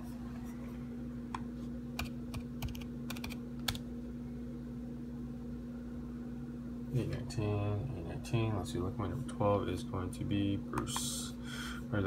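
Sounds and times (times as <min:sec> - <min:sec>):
steady low hum: 0:00.0 - 0:12.0
typing on computer keyboard: 0:02.0 - 0:03.8.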